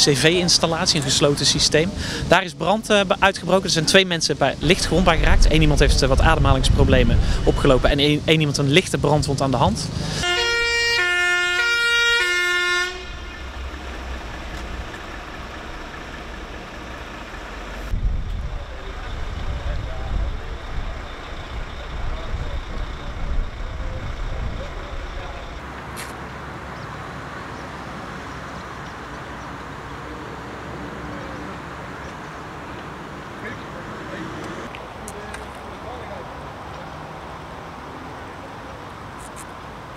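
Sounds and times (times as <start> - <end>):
low rumble: 4.6 - 8.1, 13.0 - 25.6
fire engine two-tone siren: 10.2 - 25.6.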